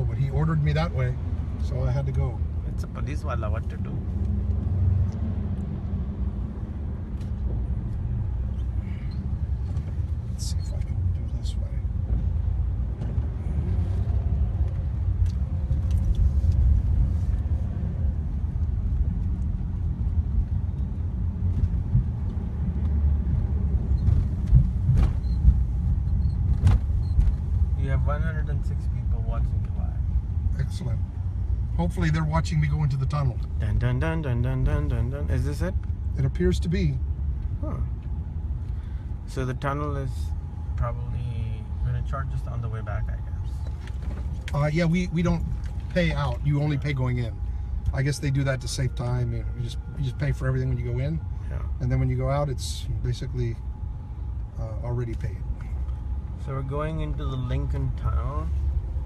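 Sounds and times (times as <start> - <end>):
car engine and tyre rumble: 0.0 - 59.0.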